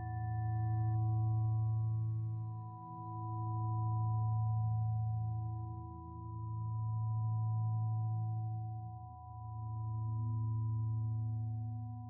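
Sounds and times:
meditation tone drone: 0.0s - 2.0s.

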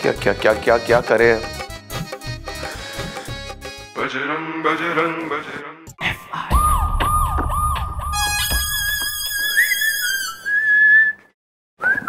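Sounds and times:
police siren yelping: 6.5s - 9.8s
high whistle-like tone: 6.5s - 12.0s.

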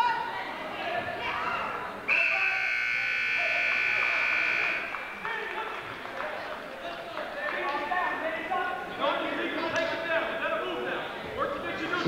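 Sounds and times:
scoreboard buzzer long tone: 2.2s - 5.0s.

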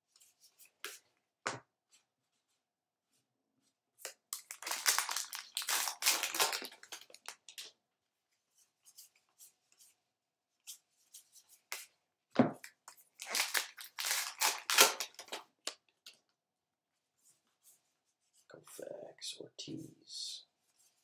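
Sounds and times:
card pack wrapper tearing: 4.4s - 7.6s, 13.2s - 15.4s.

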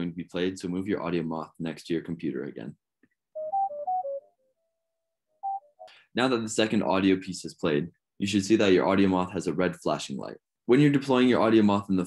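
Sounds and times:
faint held tone: 3.4s - 4.6s
short pure beeps: 5.4s - 5.8s.

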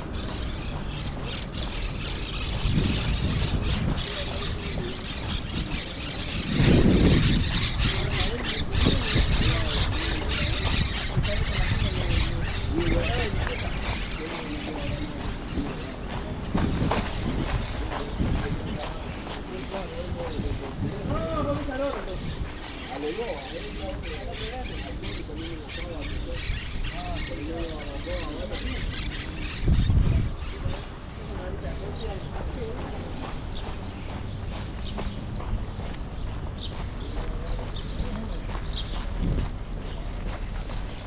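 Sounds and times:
wind rumbling on microphone: 0.0s - 25.0s, 26.0s - 41.0s
birds calling: 0.0s - 41.0s
distant overlapping voices: 0.0s - 41.0s
footsteps on dirt road: 0.0s - 41.0s.

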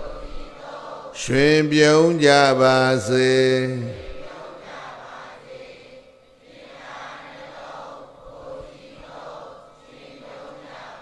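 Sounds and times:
hazy murmur: 0.0s - 11.0s
man chanting: 1.2s - 4.5s.

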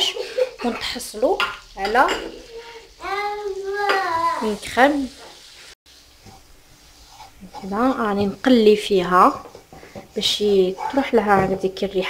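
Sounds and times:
butter and flour sizzling in pan: 0.0s - 12.0s
wooden spatula stirring: 5.2s - 12.0s.

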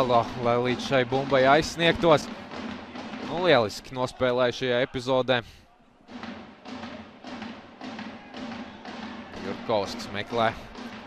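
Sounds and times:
steady drum beat: 0.0s - 4.4s, 6.1s - 11.0s.

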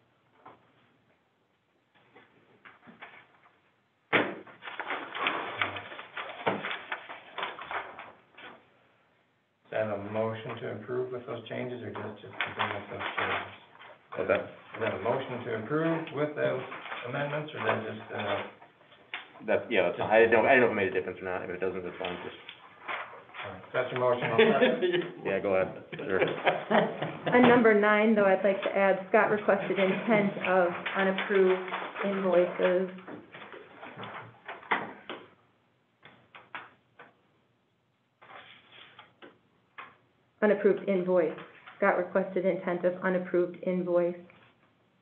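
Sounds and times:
narrow-band meeting audio: 2.0s - 8.7s, 9.6s - 35.4s
low voice talking: 23.5s - 26.5s.

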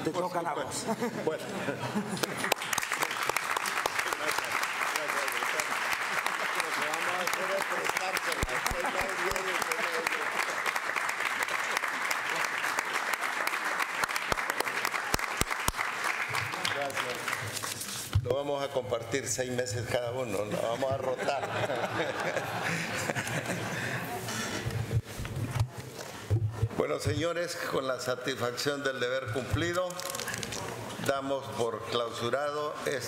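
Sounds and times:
crowd applauding: 2.1s - 18.0s, 21.4s - 24.1s
murmur of voices: 20.4s - 26.9s.

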